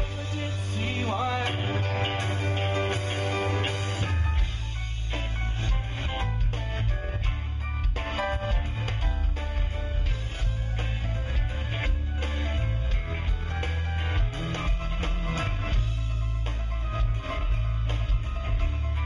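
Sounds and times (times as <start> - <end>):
drums: 0.0 - 19.0
electric guitar: 0.0 - 19.0
heavy bass line: 0.0 - 19.0.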